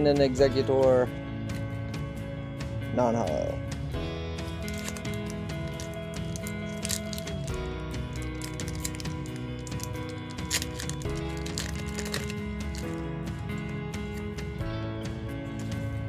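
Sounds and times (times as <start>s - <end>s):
sustained chord music: 0.0s - 16.0s
foil pack crackling: 4.4s - 14.4s.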